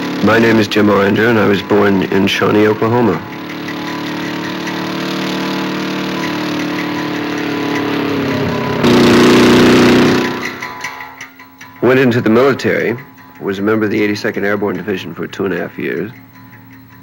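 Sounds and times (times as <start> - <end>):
motorcycle engine running: 0.0 - 17.0.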